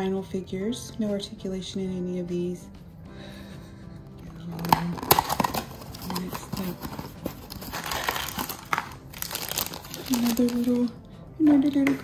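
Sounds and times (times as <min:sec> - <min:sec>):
plastic wrapping crinkling: 0:04.3 - 0:11.0.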